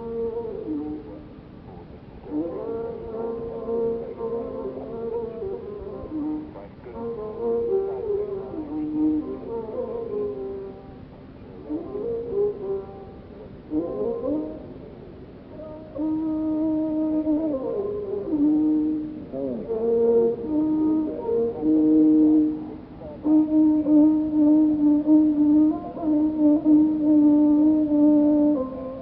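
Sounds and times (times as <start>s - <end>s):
recording hiss: 0.0s - 29.0s
vocal music: 0.0s - 29.0s.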